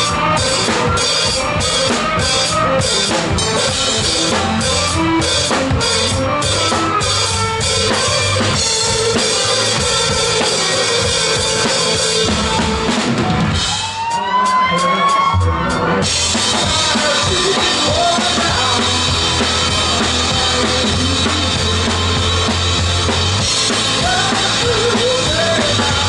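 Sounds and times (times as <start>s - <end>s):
bass guitar: 0.0s - 26.0s
drum kit: 0.0s - 26.0s
electric guitars: 0.0s - 26.0s.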